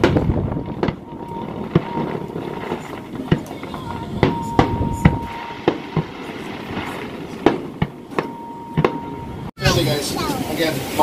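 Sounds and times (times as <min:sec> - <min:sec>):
background rumble: 0:00.0 - 0:09.5
fireworks bangs: 0:00.0 - 0:09.5
thin high tone: 0:01.0 - 0:07.0, 0:08.1 - 0:09.8.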